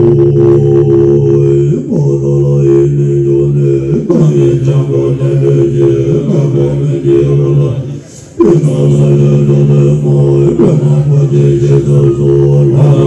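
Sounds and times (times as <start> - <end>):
low droning chant: 0.0 - 13.0.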